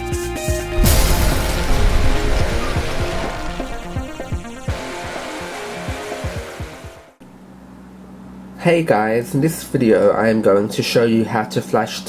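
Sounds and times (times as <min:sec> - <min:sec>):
deep drum hits: 0:00.8 - 0:07.2.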